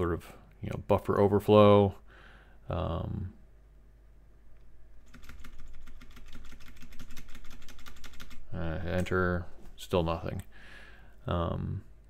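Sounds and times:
keyboard keys clicking: 5.1 - 9.1.

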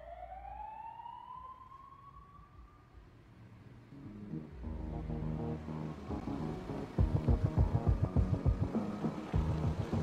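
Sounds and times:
rising siren tone: 0.0 - 3.2.

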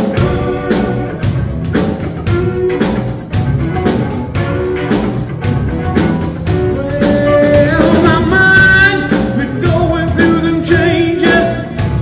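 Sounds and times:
blues-rock band playing: 0.0 - 12.0
electric guitar lead notes: 0.0 - 12.0.

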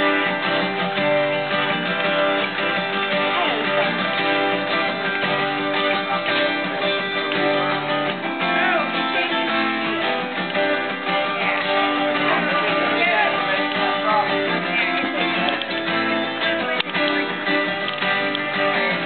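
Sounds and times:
acoustic guitars strumming chords: 0.0 - 19.0.

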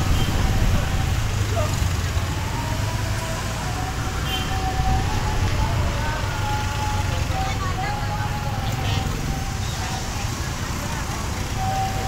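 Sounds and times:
rumble of traffic engines: 0.0 - 12.0.

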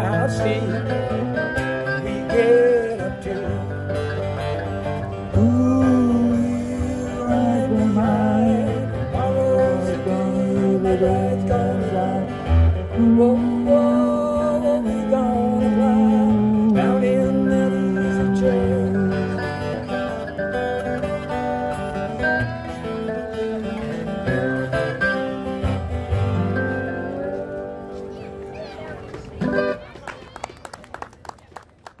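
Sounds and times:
slide guitar melody: 0.0 - 29.8
strummed acoustic guitar: 0.0 - 29.8
people clapping unevenly: 28.4 - 32.0.

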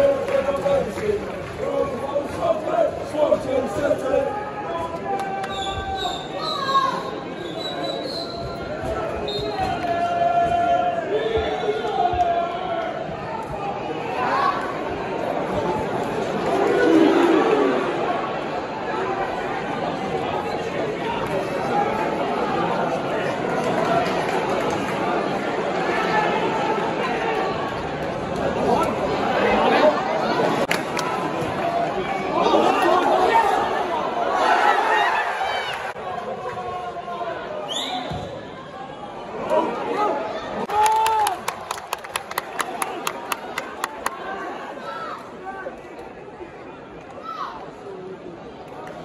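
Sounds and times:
spectators chattering: 0.0 - 49.0
crowd shouting and calling: 1.6 - 24.3.

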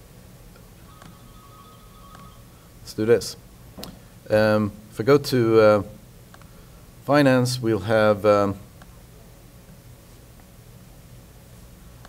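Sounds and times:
faint high whine: 0.0 - 3.5
low steady hum: 0.0 - 12.0.

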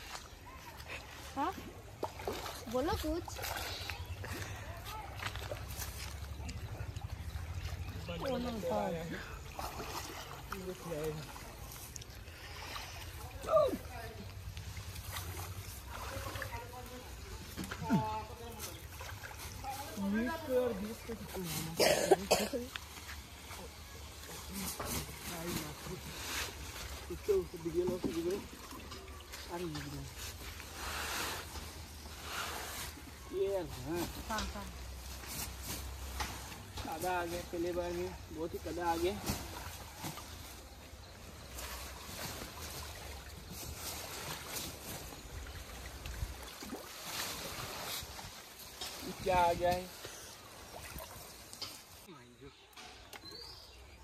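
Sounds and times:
water splashing: 0.0 - 21.9, 22.5 - 53.4.

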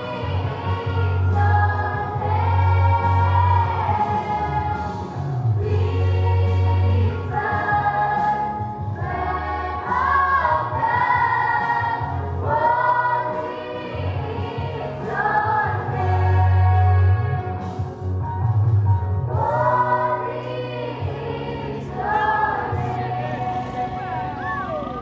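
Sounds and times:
choir singing: 0.0 - 17.7, 19.3 - 24.9.

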